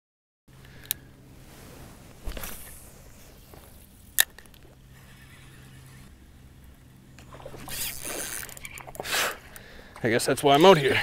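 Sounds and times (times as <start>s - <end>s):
fishing reel rustling: 2.2s - 10.9s
fishing reel click: 7.7s - 9.6s.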